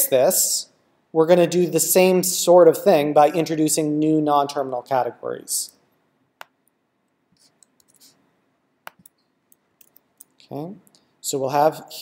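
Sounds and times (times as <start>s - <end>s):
keyboard and mouse clicks: 8.8s - 11.0s.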